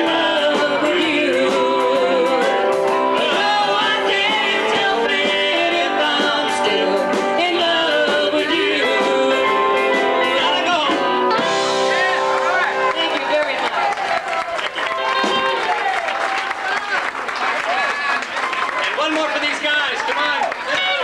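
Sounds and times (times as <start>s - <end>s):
woman singing: 0.0s - 2.6s, 3.2s - 10.6s
man singing: 0.0s - 11.2s
electric guitar: 0.0s - 13.6s, 14.7s - 16.0s
drums: 0.0s - 16.7s.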